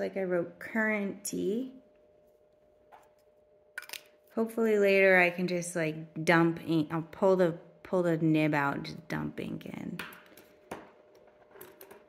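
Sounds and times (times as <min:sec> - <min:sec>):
faint steady hum: 0:00.0 - 0:12.0
small objects clicking on a desk: 0:02.9 - 0:04.2, 0:10.0 - 0:12.0.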